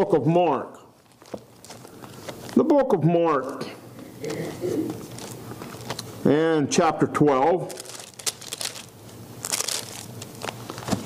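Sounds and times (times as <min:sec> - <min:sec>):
thin pages being turned: 0:01.0 - 0:02.6, 0:04.9 - 0:06.1, 0:07.7 - 0:11.0.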